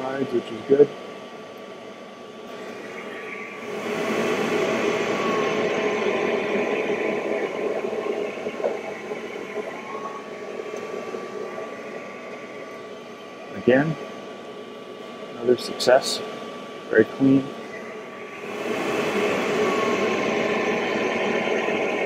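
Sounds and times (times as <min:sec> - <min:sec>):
steady whine: 0:00.0 - 0:22.0
fans rushing: 0:02.5 - 0:14.2, 0:18.2 - 0:22.0.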